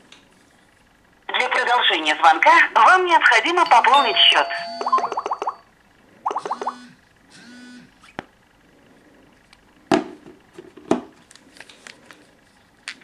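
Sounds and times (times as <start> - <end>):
warbling electronic sound: 4.5 - 7.0.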